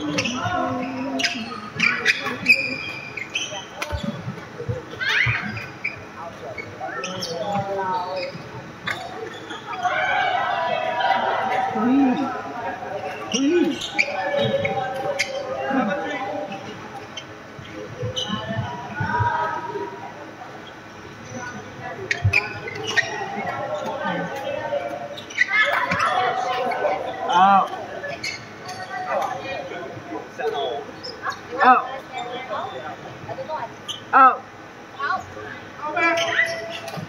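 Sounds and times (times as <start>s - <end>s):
background chatter: 0.0s - 37.0s
quiet voices: 0.0s - 37.0s.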